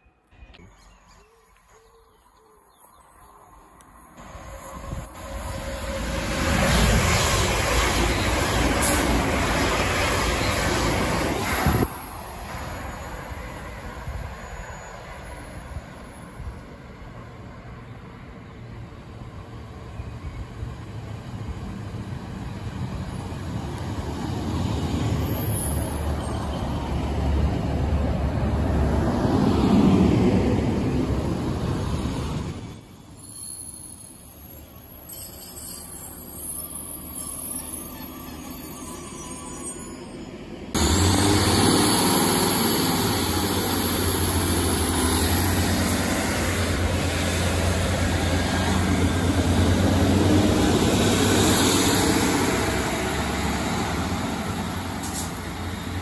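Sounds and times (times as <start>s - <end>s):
train passing at speed: 3.0s - 56.0s
diesel train engine rumble: 3.6s - 56.0s
train wheels on rails: 4.2s - 16.8s, 21.0s - 56.0s.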